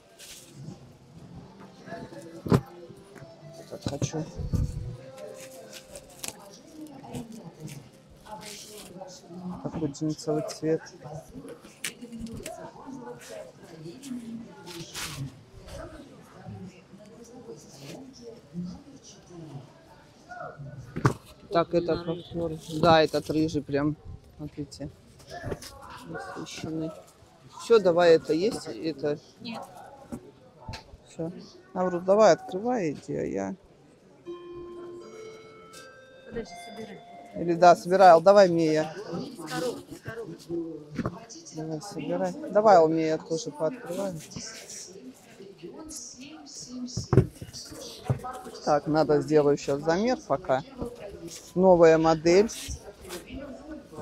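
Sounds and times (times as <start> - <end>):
faint voices: 0.0 - 54.0
plastic wrapping crinkling: 5.1 - 8.9.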